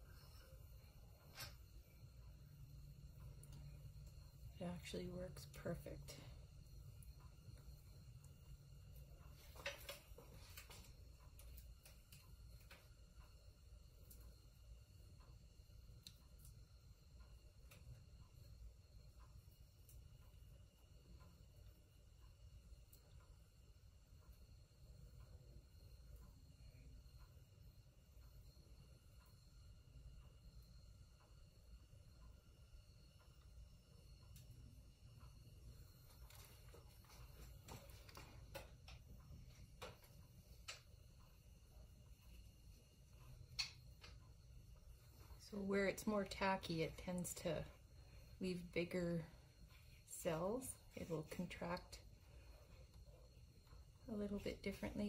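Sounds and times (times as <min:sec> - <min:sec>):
faint ticks: 0:00.1 - 0:48.4.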